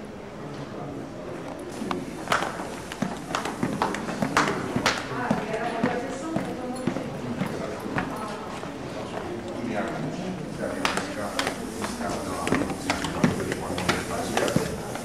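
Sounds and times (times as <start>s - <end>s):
indistinct background voices: 0.0s - 15.0s
footsteps going down stairs: 1.9s - 9.3s, 10.7s - 15.0s.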